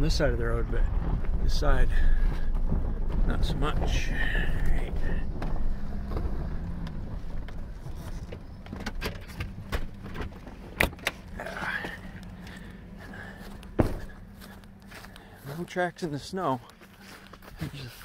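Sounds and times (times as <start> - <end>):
pickup truck engine rumbling: 0.0 - 18.0
truck door clicks and knocks: 13.7 - 14.2.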